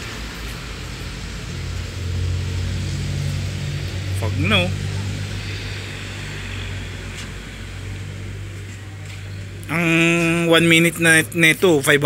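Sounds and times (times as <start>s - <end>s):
road noise: 0.0s - 12.0s
vehicle engine humming: 0.0s - 12.0s.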